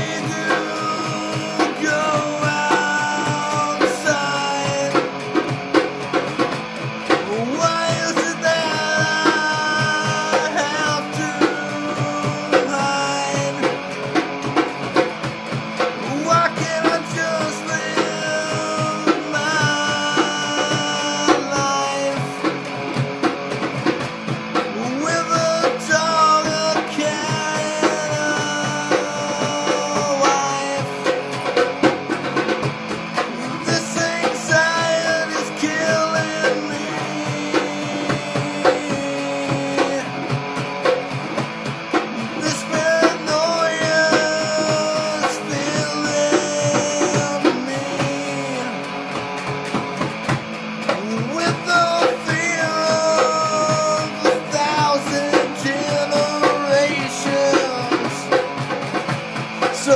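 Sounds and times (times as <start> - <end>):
rock band playing: 0.0 - 59.9.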